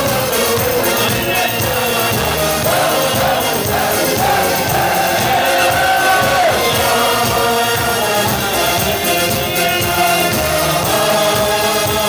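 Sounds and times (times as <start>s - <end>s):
crowd of men singing: 0.0s - 12.0s.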